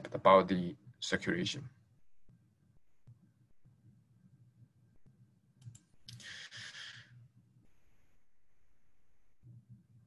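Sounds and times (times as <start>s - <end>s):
faint low hum: 0.0s - 10.0s
computer mouse clicks: 5.6s - 6.3s
breathy exhale: 6.2s - 7.1s.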